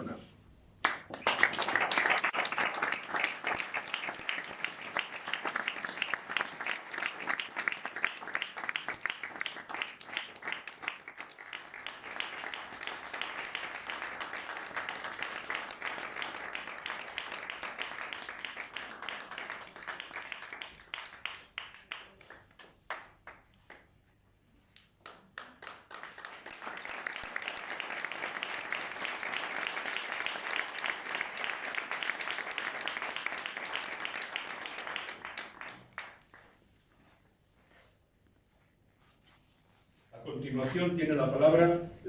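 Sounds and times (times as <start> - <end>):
audience applauding: 0.8 - 23.8, 25.0 - 36.6.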